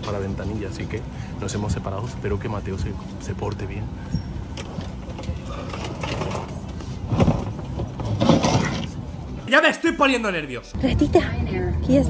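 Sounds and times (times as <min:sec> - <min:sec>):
airliner cabin hum: 0:00.0 - 0:09.7
knocks and clatter: 0:04.5 - 0:09.1.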